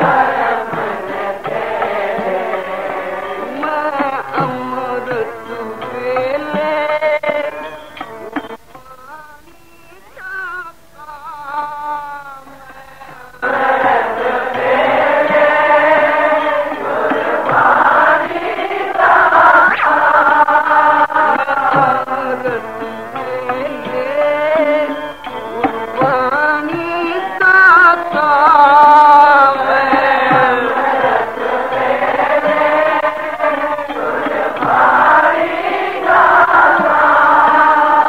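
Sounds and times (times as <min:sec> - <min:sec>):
group singing in unison: 0:00.0 - 0:08.6, 0:12.8 - 0:38.0
voices chanting together: 0:00.0 - 0:08.6, 0:12.7 - 0:27.4, 0:28.0 - 0:38.0
musical accompaniment: 0:00.0 - 0:38.0.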